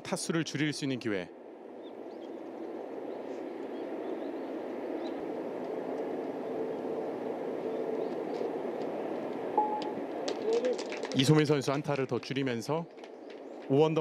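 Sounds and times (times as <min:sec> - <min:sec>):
short tone: 0:09.6 - 0:10.0.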